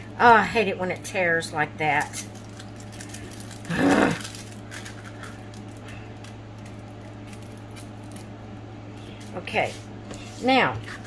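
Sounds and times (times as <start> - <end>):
low electrical hum: 0.0 - 11.0
woman groaning: 3.7 - 4.3.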